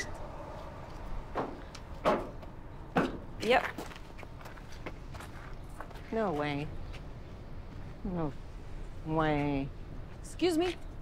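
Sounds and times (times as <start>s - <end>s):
footsteps on dirt: 3.5s - 8.0s.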